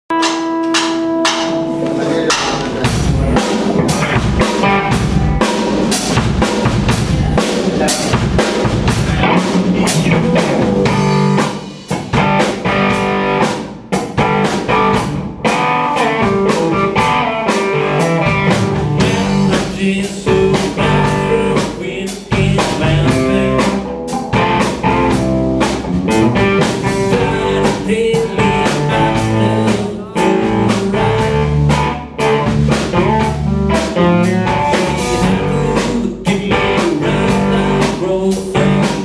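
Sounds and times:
drum kit steady beat: 0:00.1 - 0:39.0
electric bass: 0:00.1 - 0:39.0
electric guitar: 0:00.1 - 0:39.0.

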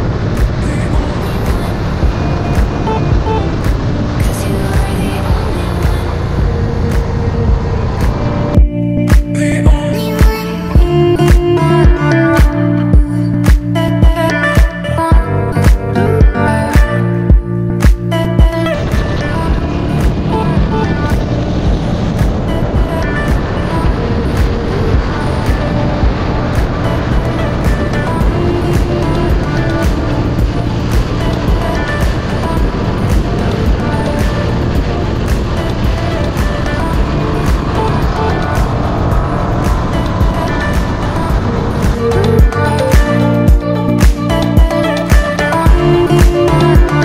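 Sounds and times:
motorcycle engine: 0:00.0 - 0:09.9
pop music: 0:00.0 - 0:47.0
wind rushing over microphone: 0:00.0 - 0:47.0.

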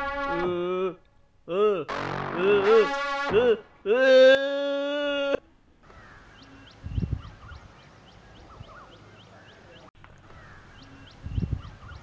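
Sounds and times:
man screaming: 0:00.4 - 0:05.4
bird chirping: 0:05.9 - 0:12.0.

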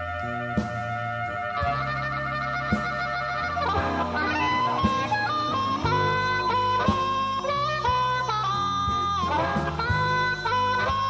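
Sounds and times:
blues harmonica: 0:00.0 - 0:11.0
drums: 0:00.0 - 0:11.0
electric bass: 0:00.0 - 0:11.0.

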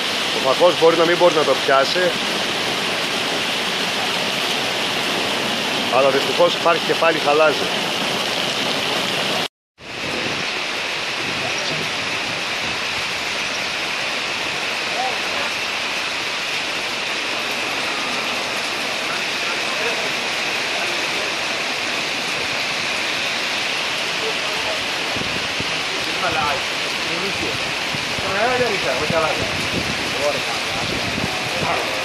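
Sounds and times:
heavy rain with hail: 0:00.0 - 0:32.0.

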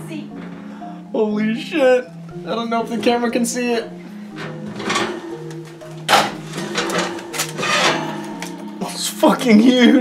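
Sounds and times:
soft guitar music: 0:00.0 - 0:10.0
pot knocking on oven rack: 0:04.3 - 0:08.7.

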